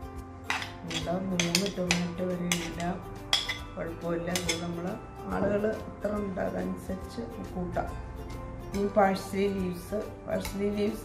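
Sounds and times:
spoon scraping and clinking on plate: 0.5s - 3.7s, 4.3s - 4.7s.

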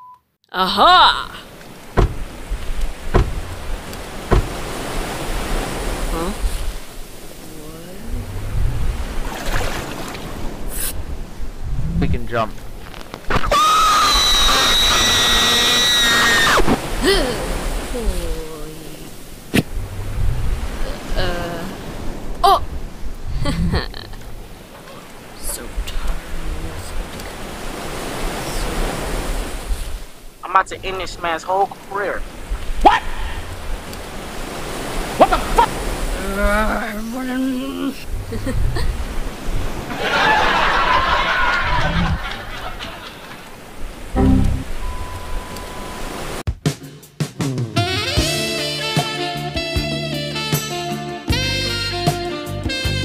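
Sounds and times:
sea waves: 1.0s - 46.5s
sharp knocks: 2.0s - 2.4s, 3.1s - 4.8s.

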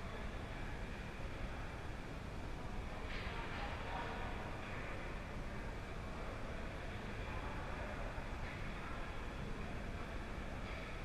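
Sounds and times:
ice rink rumble and hiss: 0.0s - 11.0s.

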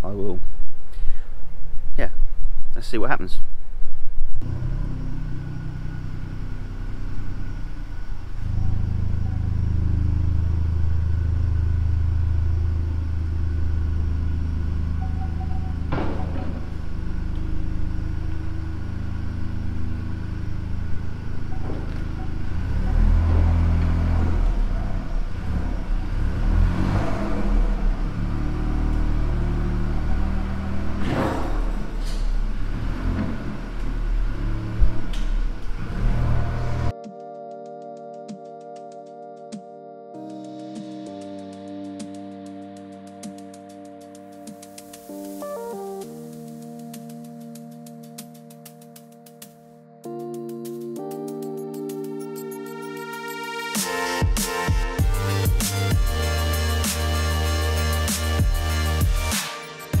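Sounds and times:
car engine running at low speed: 4.4s - 36.9s.

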